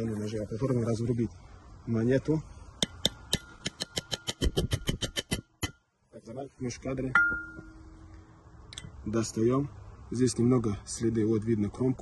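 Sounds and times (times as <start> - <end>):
faint ringing tone: 7.2 - 8.4.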